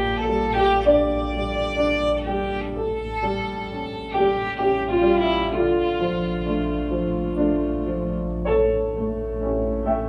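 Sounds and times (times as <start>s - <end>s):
violin playing a melody: 0.0s - 9.2s
piano accompaniment: 0.0s - 10.0s.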